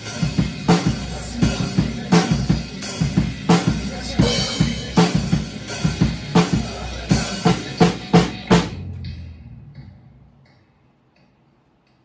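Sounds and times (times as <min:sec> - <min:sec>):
loud drum kit hits: 0:00.0 - 0:09.2.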